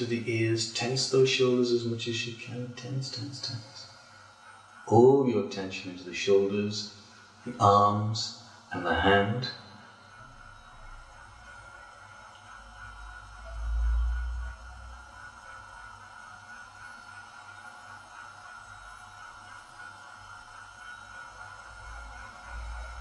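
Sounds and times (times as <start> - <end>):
faint high hum: 0.0 - 23.0
deep rumble: 13.0 - 15.2.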